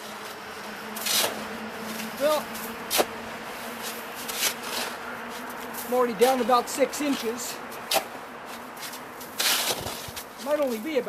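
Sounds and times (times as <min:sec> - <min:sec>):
steady low hum: 0:00.0 - 0:10.4
spade crunching into snow: 0:01.0 - 0:03.1, 0:03.8 - 0:05.4, 0:08.8 - 0:10.9.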